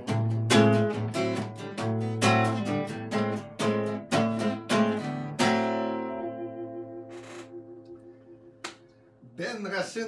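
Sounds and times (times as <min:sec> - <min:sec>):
acoustic guitar strumming blues: 0:00.0 - 0:08.4.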